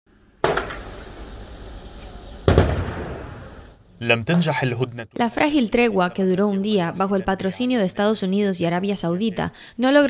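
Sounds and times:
heavy explosion blast with echo: 2.4 - 3.8.

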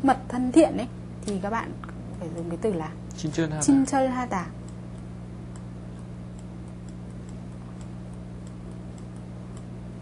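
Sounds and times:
low electrical hum: 0.0 - 10.0
faint regular ticks: 4.6 - 9.8.

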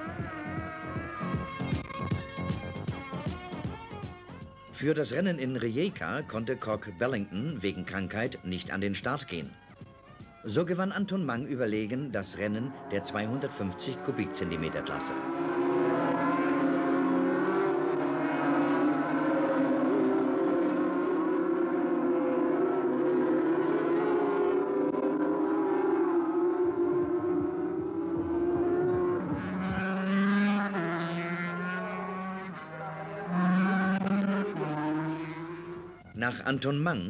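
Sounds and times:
racing motorcycle engines: 0.0 - 37.0.

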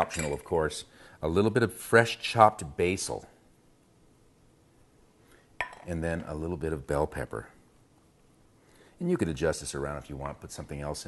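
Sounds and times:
metal spoon clinking glass bowl: 0.0 - 0.4, 5.6 - 5.9.

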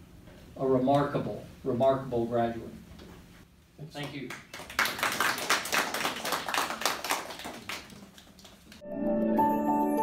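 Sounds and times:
people clapping: 4.0 - 8.8.

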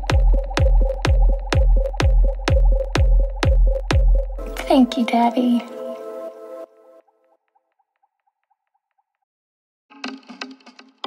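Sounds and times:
electronic breakbeat music: 0.0 - 5.4.

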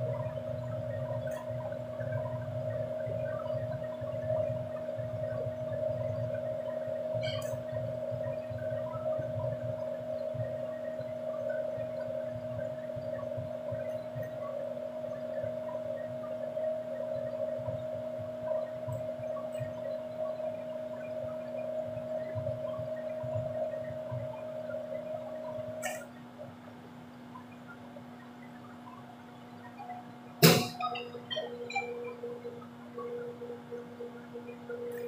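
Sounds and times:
low hum: 0.0 - 35.0
mid-pitched hum: 0.0 - 35.0.

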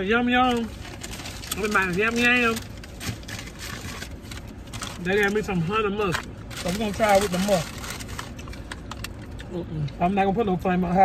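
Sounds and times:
car engine idling hum: 0.0 - 11.0.

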